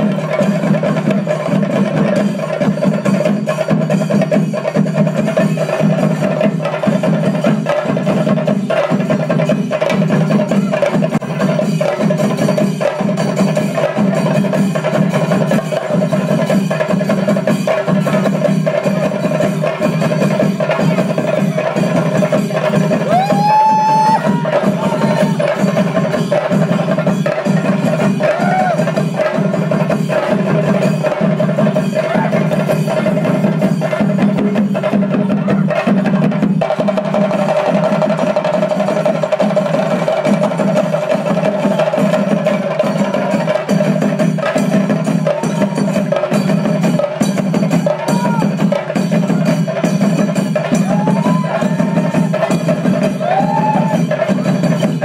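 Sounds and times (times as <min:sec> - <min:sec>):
drums beaten with sticks: 0:00.0 - 0:55.0.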